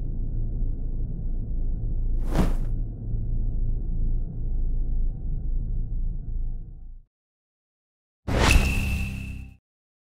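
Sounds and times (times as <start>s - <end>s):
low rumble: 0.0s - 7.1s
whoosh: 2.2s - 2.8s.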